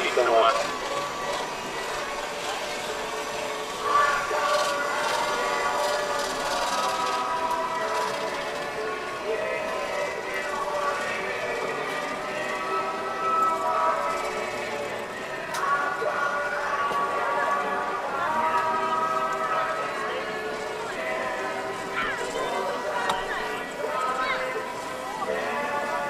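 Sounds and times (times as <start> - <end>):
indistinct voices talking: 0.0 - 26.0
outdoor background noise: 0.0 - 26.0.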